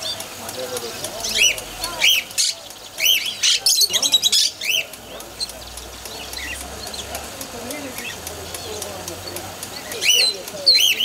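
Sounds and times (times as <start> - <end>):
parrots chirping and squawking: 0.9 - 7.1, 9.8 - 11.0.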